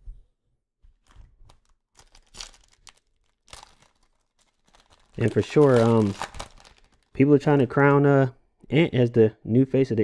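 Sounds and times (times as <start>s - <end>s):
foil wrapper crinkling: 1.0s - 7.6s.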